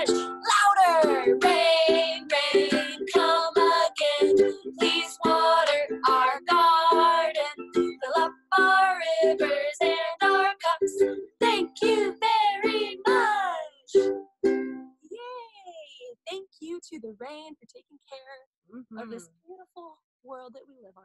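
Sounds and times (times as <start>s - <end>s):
women singing together: 0.0s - 13.6s
strummed ukulele: 0.0s - 14.9s.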